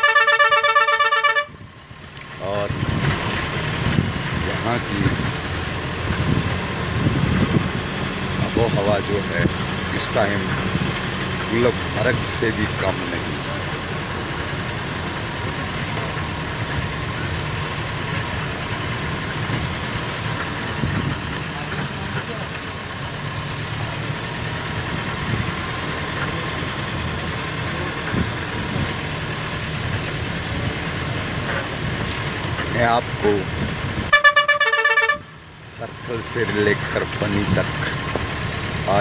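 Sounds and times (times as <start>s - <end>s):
car horn pulses: 0.0s - 1.6s, 34.1s - 35.4s
vehicle engine and road rumble: 0.0s - 39.0s.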